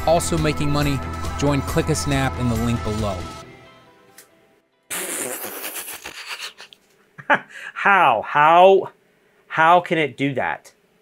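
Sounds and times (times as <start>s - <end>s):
man's breathy laughter: 4.9s - 7.8s.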